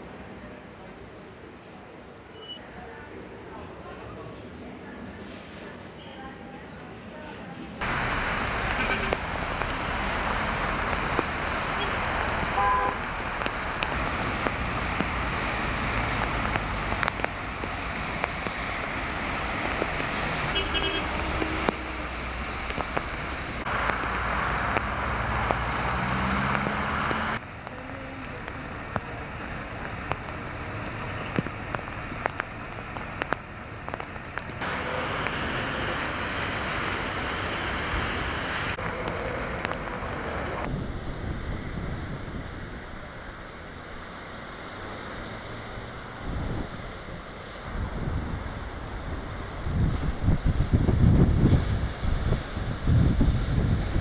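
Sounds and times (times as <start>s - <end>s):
traffic on wet streets: 0.0s - 54.0s
wind gusts buffeting microphone: 37.9s - 44.3s, 45.6s - 54.0s.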